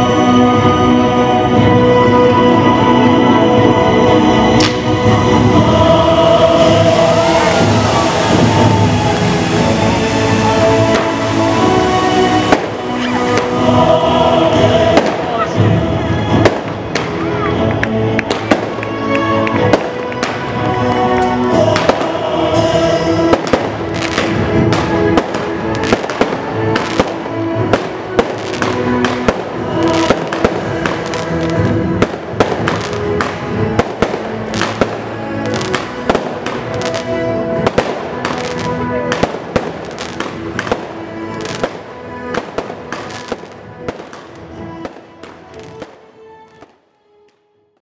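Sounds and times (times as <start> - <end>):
music: 0.0 - 47.8
fireworks crackling and banging: 4.5 - 46.8.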